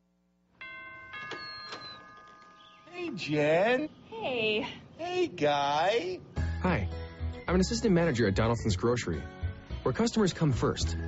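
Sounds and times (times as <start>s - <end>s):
bell-like chime notes: 0.6s - 3.6s.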